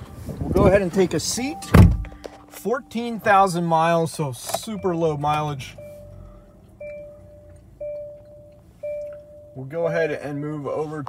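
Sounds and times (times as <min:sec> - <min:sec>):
car dashboard warning chime: 0:01.0 - 0:10.4.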